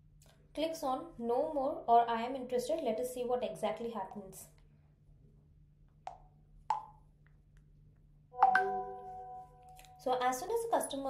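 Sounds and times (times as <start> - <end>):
short pitched notification pops: 8.4 - 9.1
ringing notification chime: 8.4 - 9.8.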